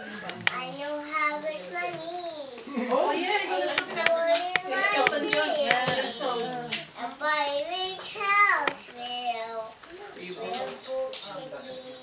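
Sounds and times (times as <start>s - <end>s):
young girl singing: 0.5s - 2.7s, 3.8s - 5.8s, 6.7s - 12.0s.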